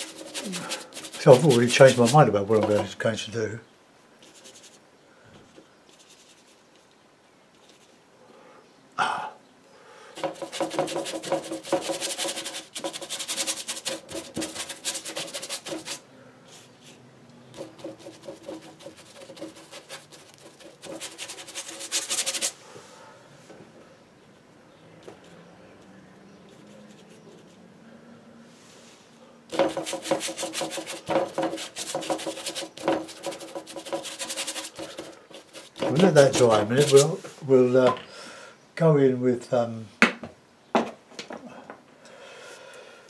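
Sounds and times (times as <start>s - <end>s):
brush scrubbing paper: 0.0s - 3.0s, 4.2s - 4.8s, 5.9s - 6.9s, 10.2s - 22.6s, 29.5s - 37.4s.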